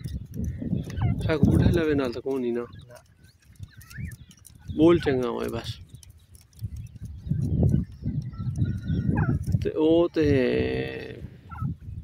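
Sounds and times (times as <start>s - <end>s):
wind rumble on microphone: 0.0s - 12.0s
chicks peeping: 0.1s - 12.0s.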